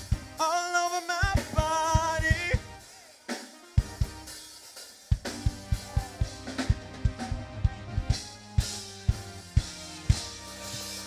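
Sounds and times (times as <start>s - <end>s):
drum kit beat: 0.0s - 11.0s
keyboard chords: 0.0s - 11.0s.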